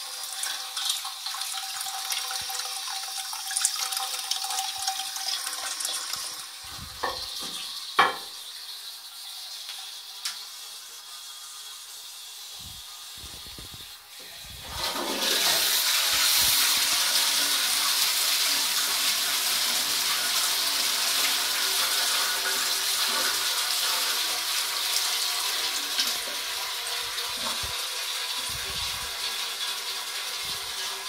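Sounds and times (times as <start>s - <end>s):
toilet flush water rushing: 0.0s - 13.2s, 13.8s - 31.0s.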